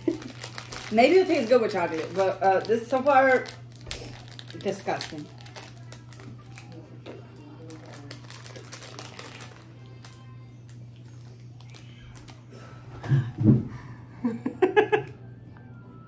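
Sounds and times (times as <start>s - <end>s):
plastic wrapper crinkling: 0.0s - 12.4s
steady low hum: 0.0s - 16.0s.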